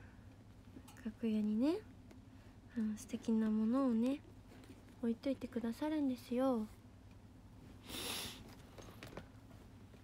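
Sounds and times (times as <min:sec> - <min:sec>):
person sniffing: 0:07.8 - 0:08.5.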